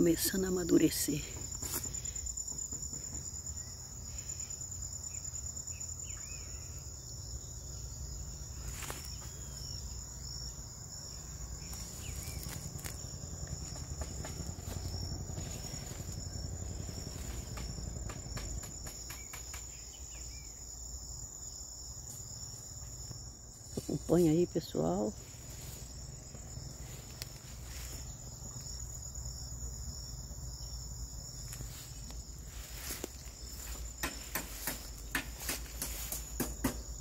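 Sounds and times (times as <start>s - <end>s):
high-pitched insect trill: 0.0s - 37.0s.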